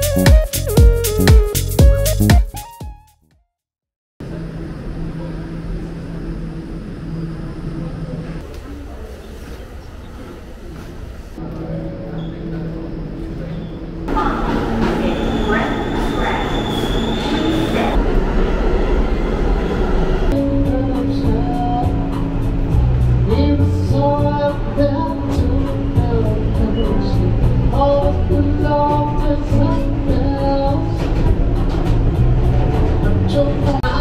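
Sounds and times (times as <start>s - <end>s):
subway train rumbling: 4.2s - 34.0s.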